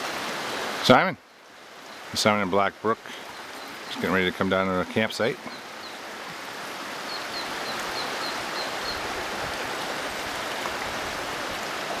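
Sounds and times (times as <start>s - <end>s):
brook running over rocks: 0.0s - 12.0s
small bird chirping: 3.3s - 4.1s.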